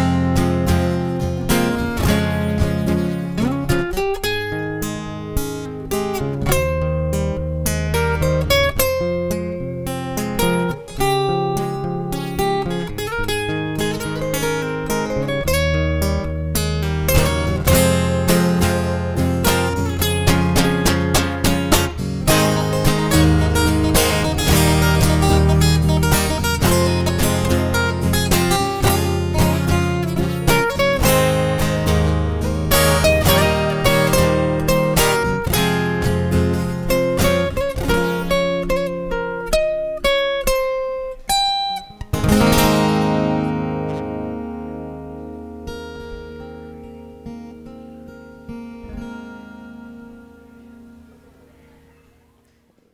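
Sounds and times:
acoustic guitars playing: 0.0 - 52.8.

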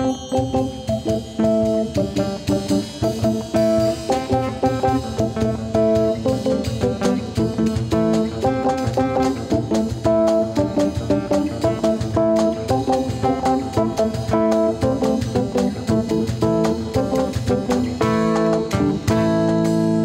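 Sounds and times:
acoustic-electric guitar: 0.0 - 20.0
electric bass: 0.0 - 20.0
hand percussion: 0.0 - 20.0.

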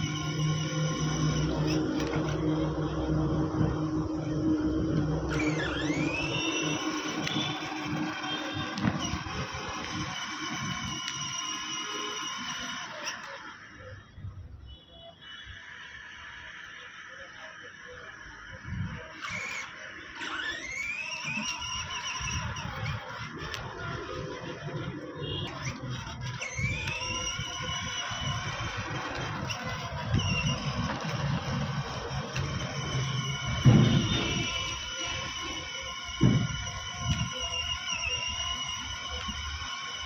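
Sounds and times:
electronic rising pitch sweeps: 0.0 - 14.0, 16.7 - 40.0
low rumble: 1.2 - 6.7.

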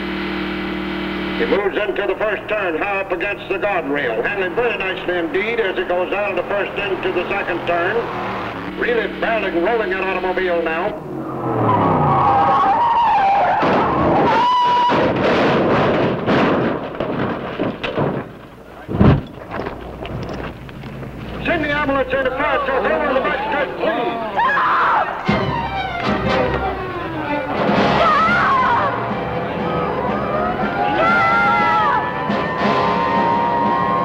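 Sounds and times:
tyres screeching: 1.1 - 15.2, 17.6 - 34.0
voices screaming: 3.4 - 15.0, 21.4 - 34.0
metal crashing: 12.3 - 22.3
loud bang: 12.6 - 20.6
dramatic film music: 25.2 - 33.8.

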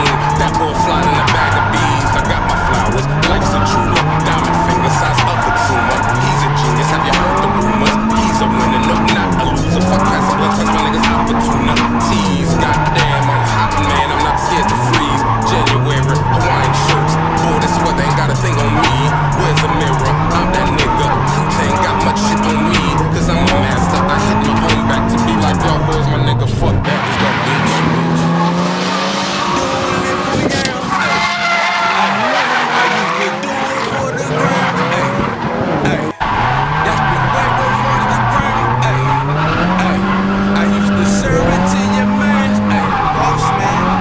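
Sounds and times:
car engine revving: 0.0 - 44.0
tyres squealing: 0.0 - 44.0.

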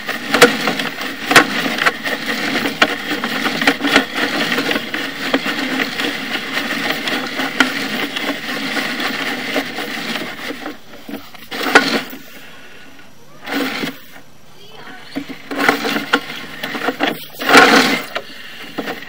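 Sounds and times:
cable reel rattling and clicking: 0.0 - 12.8, 13.4 - 19.0.

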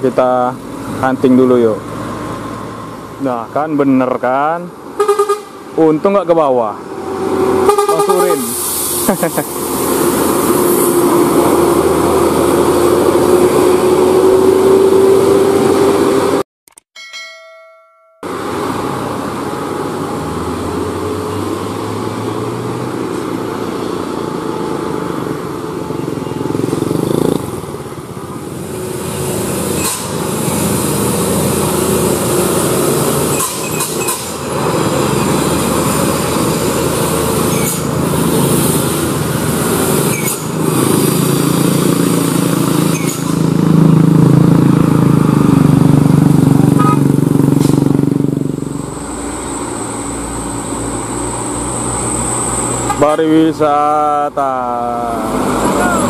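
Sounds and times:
diesel engines passing: 0.0 - 16.4, 18.2 - 56.0
motorcycles passing: 0.0 - 16.4, 18.2 - 56.0.

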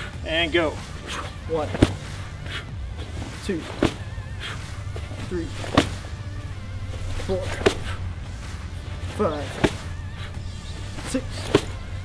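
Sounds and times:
sandbag hitting: 0.0 - 8.0, 9.0 - 12.0
background music: 0.0 - 12.0.

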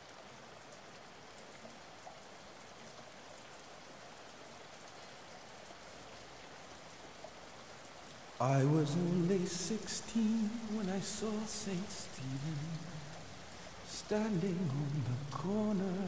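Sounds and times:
faint rain-like hiss: 0.0 - 16.0.

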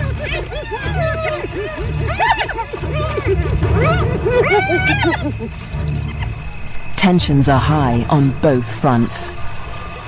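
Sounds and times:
hyena giggling call: 0.0 - 6.4.

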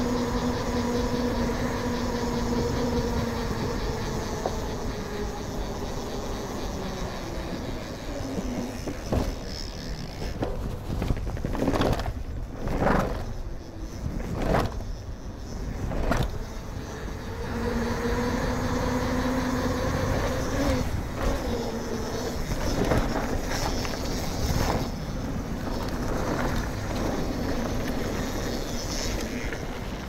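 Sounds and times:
tyres rolling and bike rattling: 0.0 - 30.0.

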